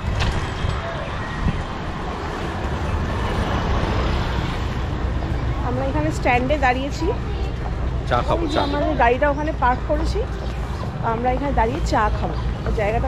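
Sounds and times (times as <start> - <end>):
passing road traffic: 0.0 - 13.0.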